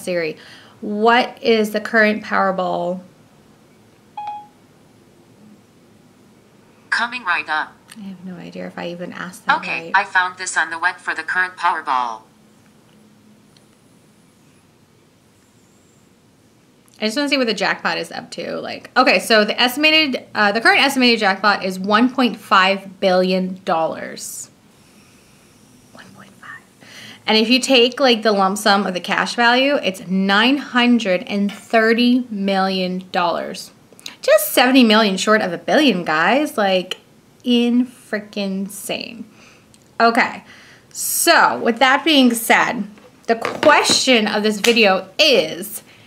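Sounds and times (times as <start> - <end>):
woman whispering: 25.9 - 26.8.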